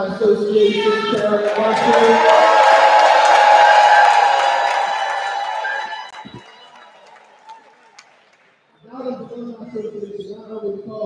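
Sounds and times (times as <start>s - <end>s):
audience cheering and shouting: 0.8s - 8.0s.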